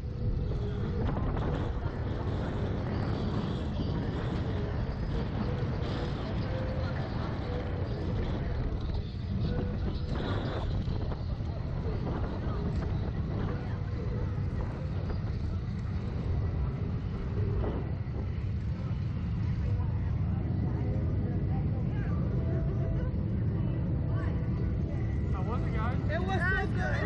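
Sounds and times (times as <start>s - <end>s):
faint voices: 0.0s - 27.0s
wind buffeting microphone: 0.0s - 27.0s.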